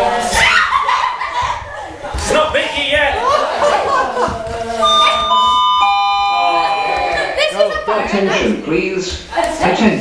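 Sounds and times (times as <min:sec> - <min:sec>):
three-note attention chime: 0:04.8 - 0:07.4.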